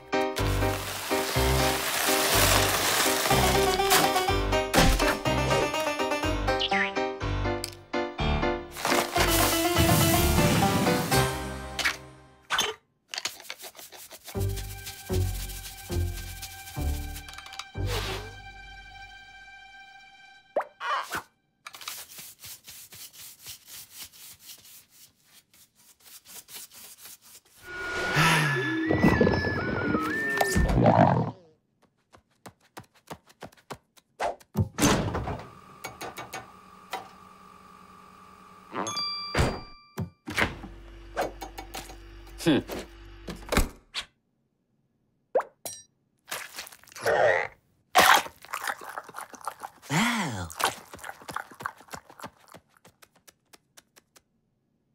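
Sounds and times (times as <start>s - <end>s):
scuffing brushing strokes: 13.4s - 17.2s, 21.7s - 27.6s.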